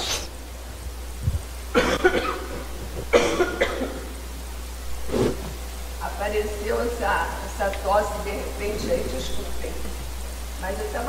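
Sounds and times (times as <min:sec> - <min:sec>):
woman coughing: 0:01.7 - 0:04.1.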